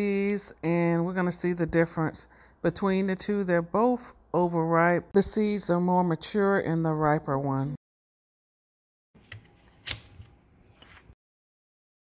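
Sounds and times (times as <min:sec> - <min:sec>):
knife cutting cucumber: 0:09.2 - 0:11.2.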